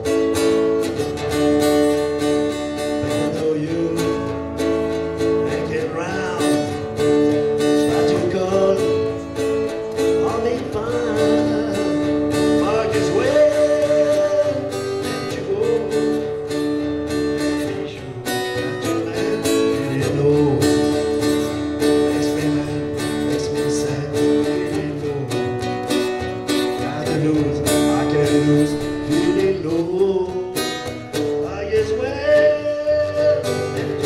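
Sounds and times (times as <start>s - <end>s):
acoustic guitar strumming: 0.0s - 34.0s.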